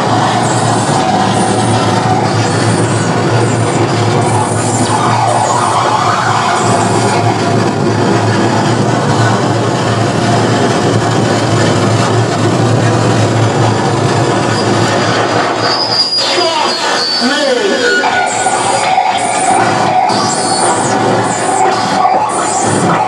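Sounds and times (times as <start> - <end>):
distorted harsh noise: 0.0 - 23.0
high sweeping tones: 0.0 - 23.0.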